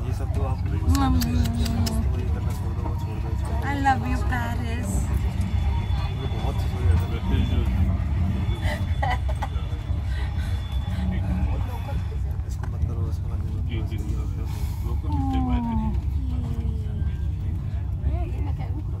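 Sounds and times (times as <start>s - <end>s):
faint voices: 0.0s - 19.0s
train rumbling: 0.0s - 19.0s.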